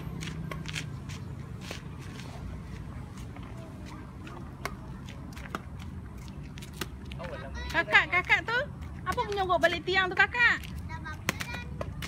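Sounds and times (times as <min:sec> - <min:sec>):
faint distant voices: 0:01.0 - 0:12.0.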